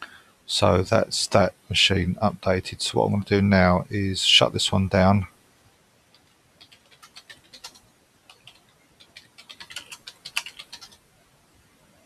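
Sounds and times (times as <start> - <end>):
typing on computer keyboard: 6.2 - 11.0.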